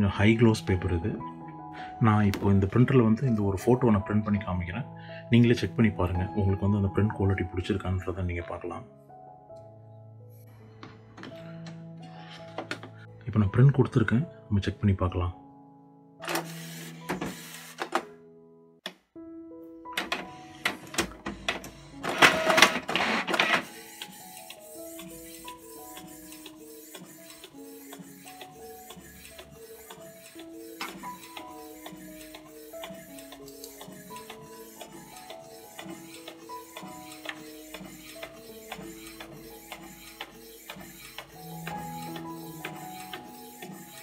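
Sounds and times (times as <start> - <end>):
gentle background music: 0.0 - 44.0
inkjet printer printing: 16.3 - 18.1, 20.0 - 44.0.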